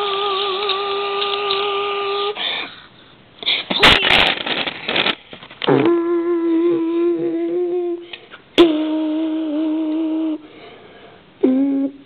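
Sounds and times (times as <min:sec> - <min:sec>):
person humming: 0:00.0 - 0:02.4, 0:05.7 - 0:10.5, 0:11.4 - 0:12.0.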